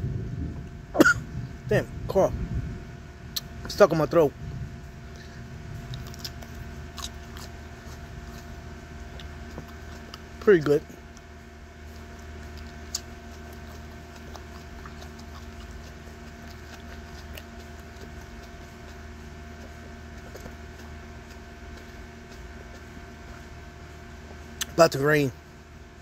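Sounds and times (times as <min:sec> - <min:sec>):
steady background hum: 0:00.0 - 0:26.0.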